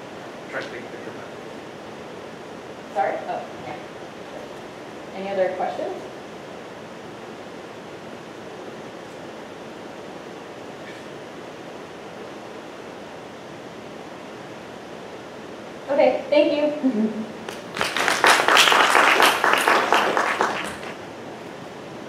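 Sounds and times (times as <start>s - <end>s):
room tone hiss: 0.0s - 22.0s.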